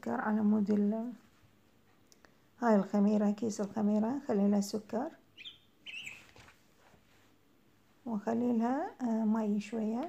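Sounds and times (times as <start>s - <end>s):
small bird chirping: 5.3s - 6.5s.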